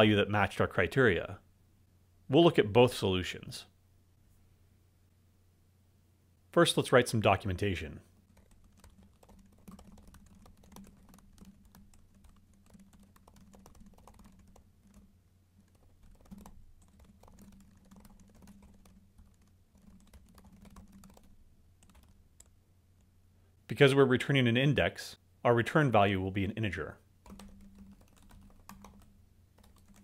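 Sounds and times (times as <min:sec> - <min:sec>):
typing on keyboard: 0:08.3 - 0:22.5, 0:27.2 - 0:30.0.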